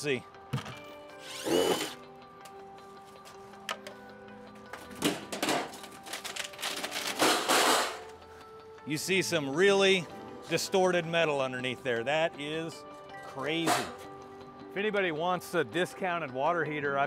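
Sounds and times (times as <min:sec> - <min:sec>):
background music: 0:00.0 - 0:17.0
cordless drill whining: 0:01.2 - 0:02.0.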